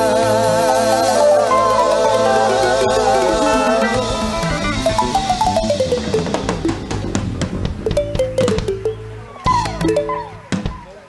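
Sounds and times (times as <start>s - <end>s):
live band music: 0.0s - 11.0s
drum hits: 3.3s - 10.9s.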